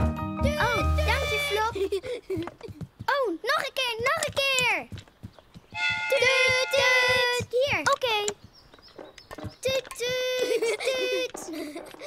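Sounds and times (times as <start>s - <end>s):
quick light footsteps: 1.0s - 12.0s.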